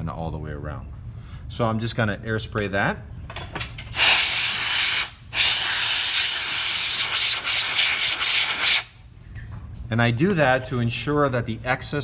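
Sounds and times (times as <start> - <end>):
compressed air hissing: 3.9 - 9.0.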